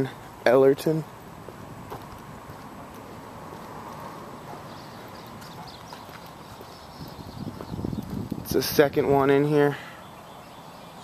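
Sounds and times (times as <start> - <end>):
footsteps on pavement: 1.1 - 9.4.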